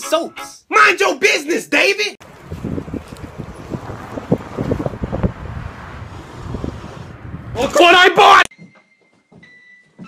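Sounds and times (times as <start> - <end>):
wind buffeting microphone: 2.2 - 7.8.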